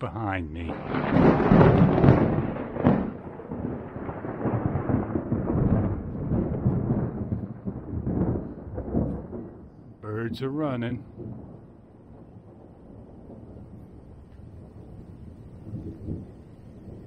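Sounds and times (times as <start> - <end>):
thunder rolling and rumbling: 0.0 - 17.0.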